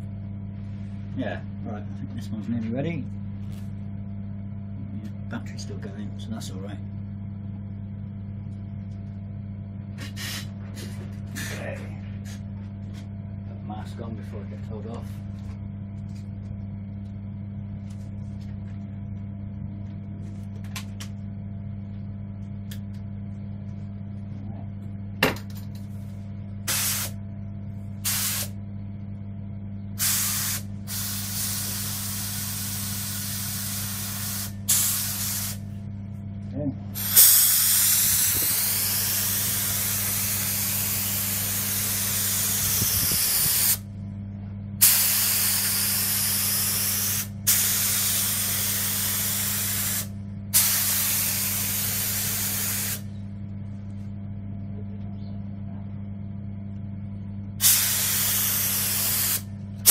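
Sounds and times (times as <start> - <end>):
low hum: 0.0 - 46.4, 47.1 - 59.9
hissing spray bursts: 26.7 - 27.2, 28.1 - 28.5, 30.0 - 35.6, 37.0 - 43.8, 44.8 - 53.0, 57.6 - 59.9.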